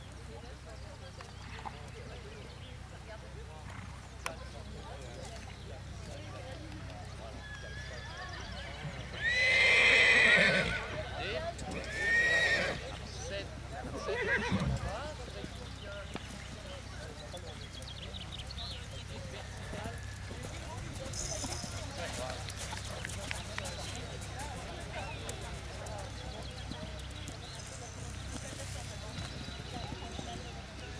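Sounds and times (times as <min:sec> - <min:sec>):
hoofbeats cantering on sand: 0:00.0 - 0:30.9
horse whinnying: 0:08.8 - 0:10.9, 0:11.7 - 0:12.8, 0:14.0 - 0:14.8.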